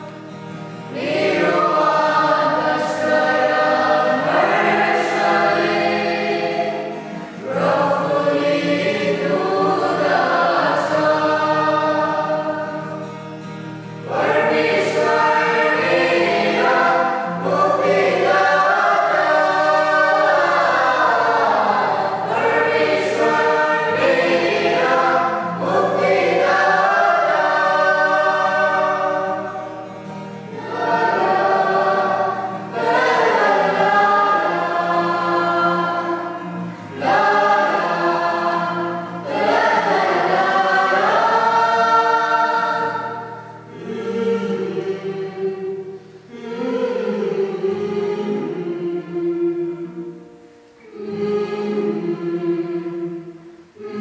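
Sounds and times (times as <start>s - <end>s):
group singing hymn: 0.0s - 54.0s
low held accompanying notes: 0.0s - 54.0s.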